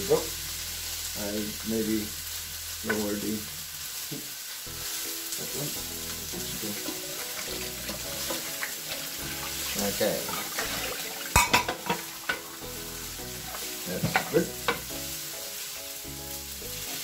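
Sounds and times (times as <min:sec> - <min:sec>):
rice sizzling in a frying pan: 0:00.0 - 0:17.0
wooden spoon striking pan: 0:11.4 - 0:12.4.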